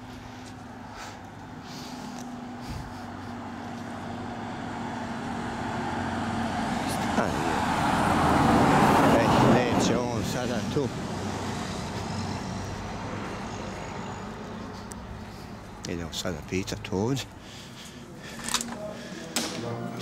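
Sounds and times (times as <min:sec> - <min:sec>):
car passing by: 0:01.7 - 0:15.8.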